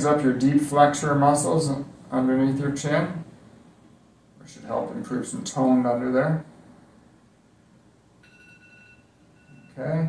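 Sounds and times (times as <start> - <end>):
faint high electronic tone: 8.2 - 10.0.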